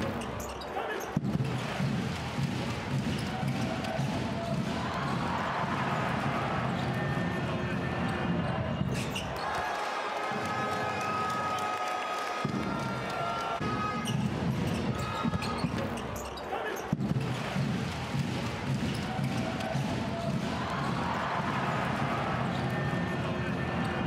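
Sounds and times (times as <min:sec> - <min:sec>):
crowd noise: 0:00.0 - 0:24.0
voices in a hall: 0:00.0 - 0:24.0.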